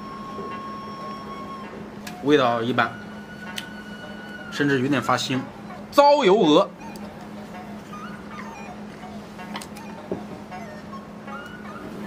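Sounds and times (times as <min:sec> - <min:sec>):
high gliding whines: 0:00.0 - 0:05.9
quiet background music: 0:00.0 - 0:12.0.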